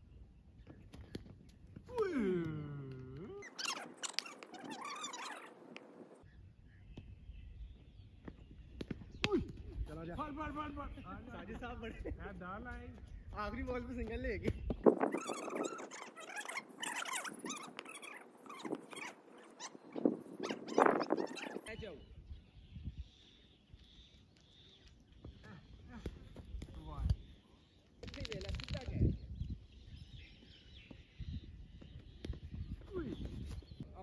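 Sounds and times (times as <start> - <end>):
men calling out: 1.9 - 3.6.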